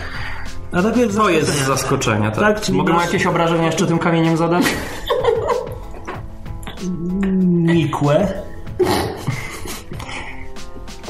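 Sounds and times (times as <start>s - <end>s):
soft music with held tones: 0.0s - 11.0s.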